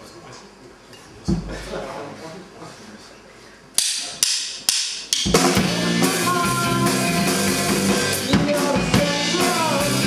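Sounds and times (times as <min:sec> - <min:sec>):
drumsticks clicking together: 0:03.8 - 0:05.2
rock band playing: 0:05.0 - 0:10.0.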